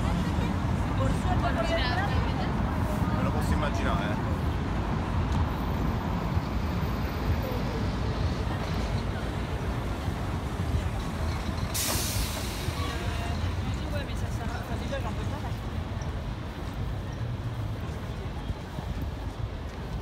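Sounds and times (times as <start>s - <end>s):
low traffic rumble: 0.0s - 20.0s
passers-by talking: 0.0s - 20.0s
loud hiss: 11.7s - 13.2s.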